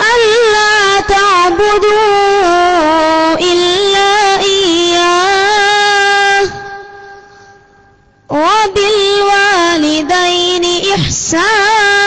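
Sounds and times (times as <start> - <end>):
boy chanting a long note: 0.0 - 7.2, 8.3 - 12.0.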